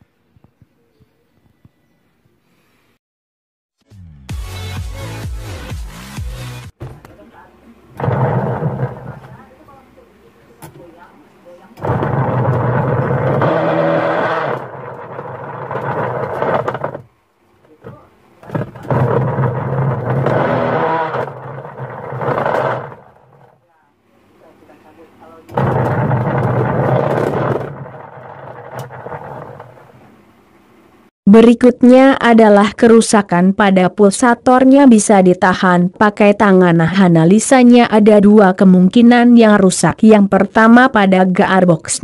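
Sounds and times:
washing machine motor humming: 7.2s - 23.6s, 25.2s - 31.0s.

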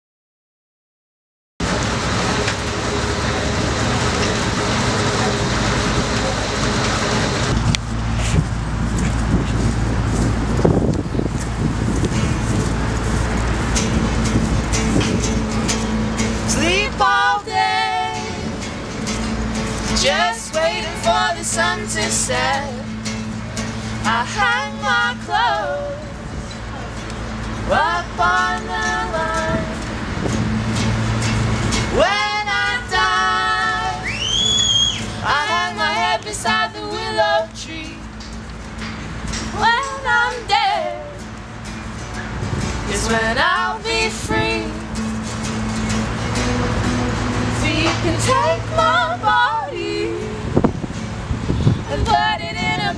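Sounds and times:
acoustic guitar strumming: 1.6s - 52.9s
background voices: 1.6s - 52.9s
person singing folk song: 14.6s - 38.5s, 39.2s - 41.6s, 42.7s - 50.8s, 51.6s - 52.9s.

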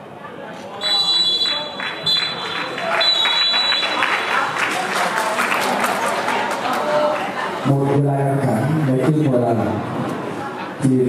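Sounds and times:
voices: 0.0s - 9.3s
hand claps: 1.4s - 6.9s.

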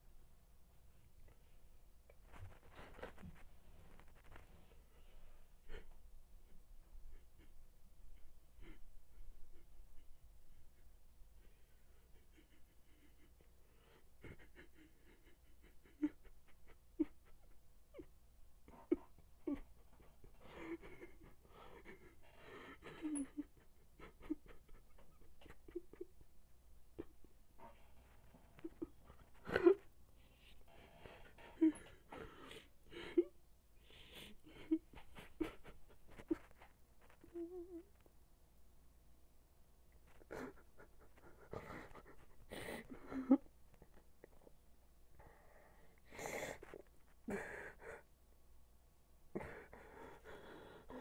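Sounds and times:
man whimpering sobs: 8.2s - 18.1s, 18.7s - 26.3s, 28.6s - 29.9s, 31.0s - 33.4s, 40.1s - 44.4s, 46.0s - 48.0s, 49.3s - 51.0s
man breathing heavily and sniffing: 40.1s - 44.0s, 45.2s - 48.1s, 49.4s - 51.0s.

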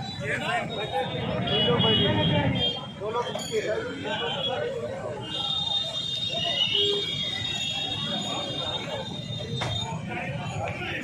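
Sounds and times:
street crowd noise: 0.0s - 11.0s
voices: 0.0s - 11.0s.

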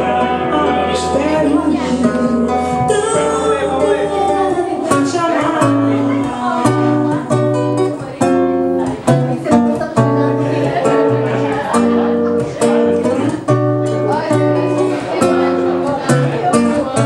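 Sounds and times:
woman singing through microphone: 0.0s - 8.2s
acoustic guitar strumming chords: 0.0s - 17.0s.

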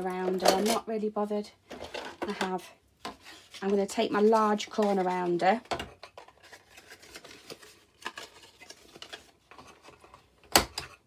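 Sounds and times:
cardstock rustling: 3.1s - 5.5s, 6.2s - 10.1s.

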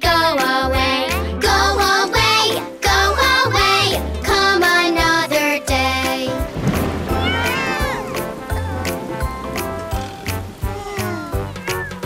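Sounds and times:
children's music with steady beat: 0.0s - 12.0s
cartoon kitten meowing: 7.2s - 8.1s, 10.7s - 12.0s.

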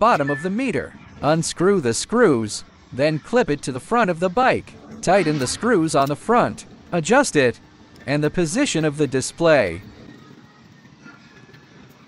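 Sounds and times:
low outdoor hiss: 0.4s - 10.8s.

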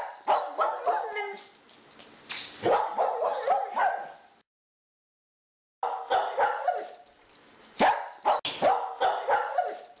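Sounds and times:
dog barking and yipping: 0.0s - 1.5s, 2.6s - 4.2s, 5.8s - 7.0s, 7.8s - 10.0s.

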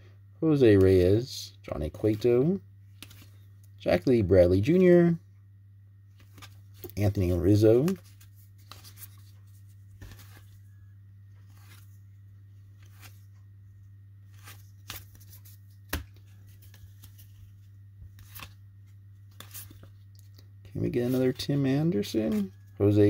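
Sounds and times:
steady low hum: 0.0s - 23.0s
cards sliding and flicking: 3.0s - 3.4s, 6.2s - 7.0s, 7.8s - 10.6s, 11.4s - 12.0s, 12.8s - 13.3s, 14.3s - 17.5s, 18.1s - 18.6s, 19.3s - 19.9s.

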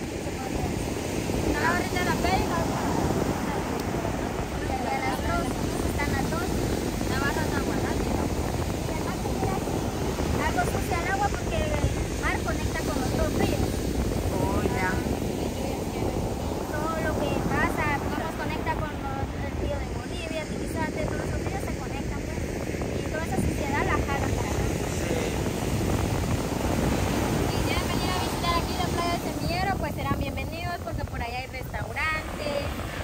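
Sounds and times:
surf breaking on beach: 0.0s - 33.0s
wind buffeting microphone: 0.0s - 33.0s
woman talking: 0.3s - 25.2s, 27.1s - 32.8s.

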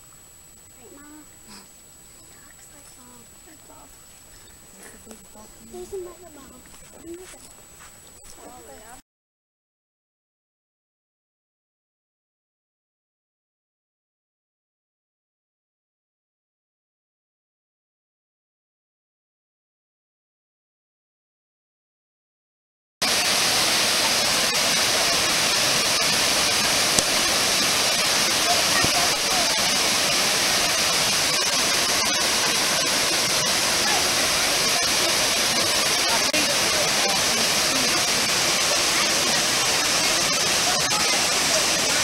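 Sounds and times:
waterfall rushing over rock: 23.0s - 42.0s.

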